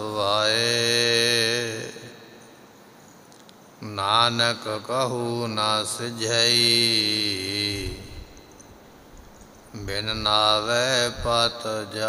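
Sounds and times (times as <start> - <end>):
man chanting: 0.0 - 2.4, 3.8 - 8.5, 9.7 - 12.0
steady low hum: 4.9 - 12.0.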